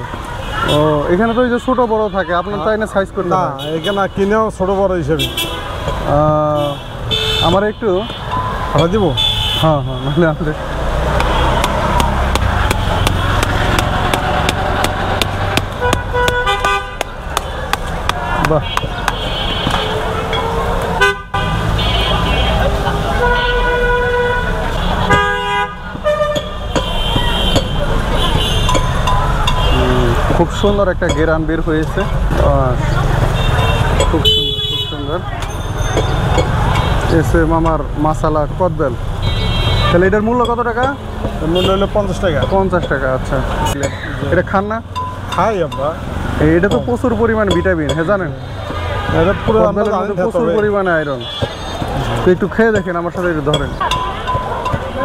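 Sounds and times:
street traffic rumble: 0:00.0 - 0:55.0
vehicle horn blasts: 0:15.8 - 0:17.0, 0:23.2 - 0:28.9, 0:33.4 - 0:35.2, 0:39.2 - 0:40.2.

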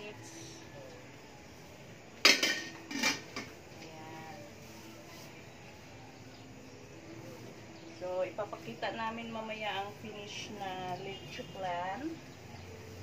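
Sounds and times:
metal lid clanking: 0:02.2 - 0:03.6.

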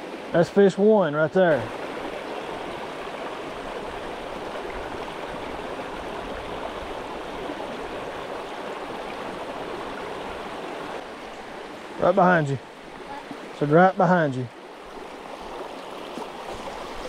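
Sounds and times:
creek water rushing over rocks: 0:00.0 - 0:17.0.

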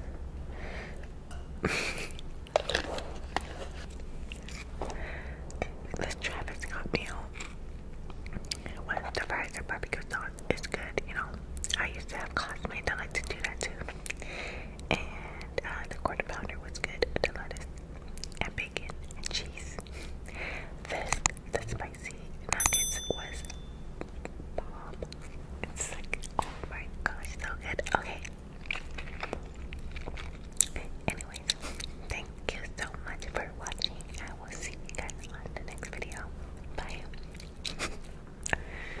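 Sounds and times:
person chewing: 0:28.2 - 0:32.1.

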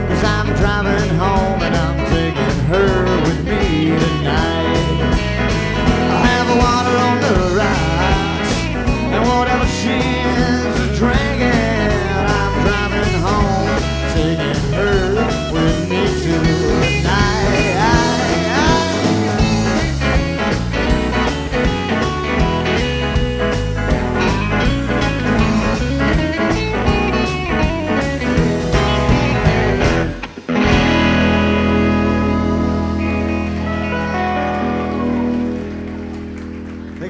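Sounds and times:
country band playing live: 0:00.0 - 0:37.0.

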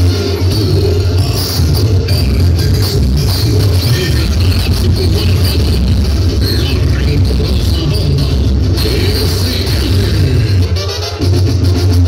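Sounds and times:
loud latin music with heavy bass: 0:00.0 - 0:12.0.

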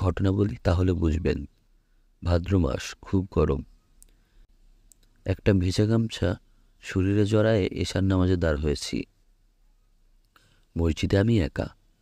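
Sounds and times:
narrator reading: 0:00.0 - 0:04.2, 0:04.9 - 0:09.4, 0:10.2 - 0:12.0
faint clicks: 0:04.0 - 0:04.2, 0:04.8 - 0:05.2, 0:10.2 - 0:10.7.

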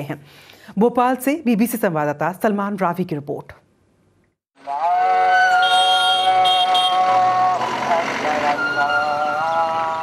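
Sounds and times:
man chanting call to prayer: 0:04.6 - 0:10.0.

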